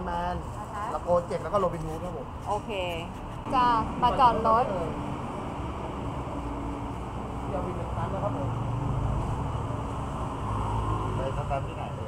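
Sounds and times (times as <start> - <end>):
woman's voice: 2.5 - 5.0.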